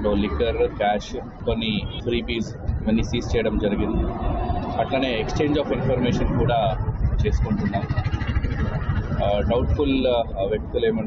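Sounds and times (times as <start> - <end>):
faint voices: 0.0 - 11.0
vehicle passing close by: 3.7 - 10.0.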